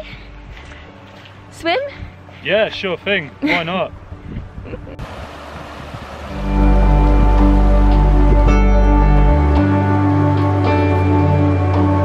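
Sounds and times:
stream water rushing: 0:05.0 - 0:08.5
music with chords and deep bass: 0:06.3 - 0:12.0.

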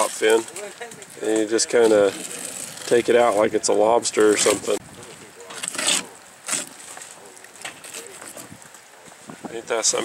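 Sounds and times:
knife scraping and tearing flesh: 0:05.5 - 0:07.0.

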